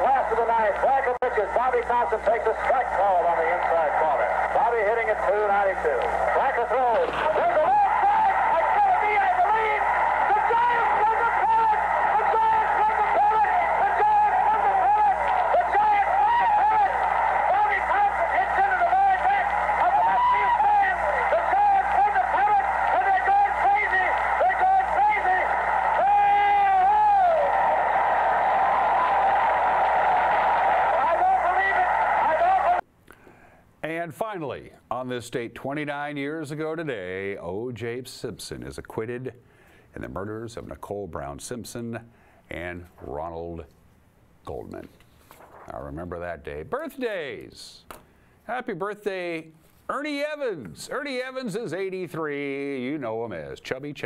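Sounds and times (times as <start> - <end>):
announcer shouting excitedly: 0.0 - 29.6, 30.6 - 32.8
crowd noise: 0.0 - 32.9.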